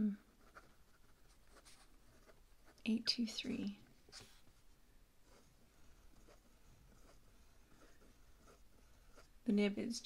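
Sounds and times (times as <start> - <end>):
fountain pen writing on paper: 5.3 - 9.3.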